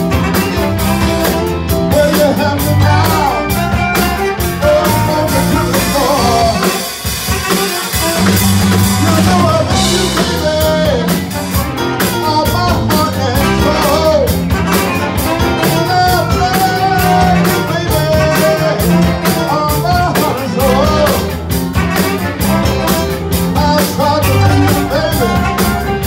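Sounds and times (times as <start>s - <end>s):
saxophone and trombone horns: 0.0s - 26.0s
soul blues band playing: 0.0s - 26.0s.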